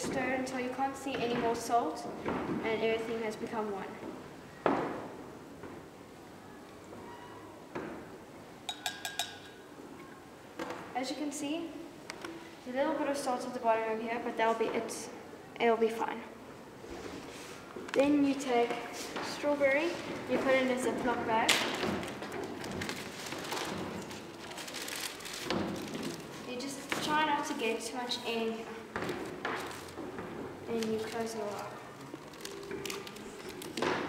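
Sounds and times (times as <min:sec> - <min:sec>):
spoon clinking against glass jug: 0:08.7 - 0:09.6
plastic bag crinkling: 0:22.0 - 0:26.9, 0:29.5 - 0:30.0, 0:30.7 - 0:33.8.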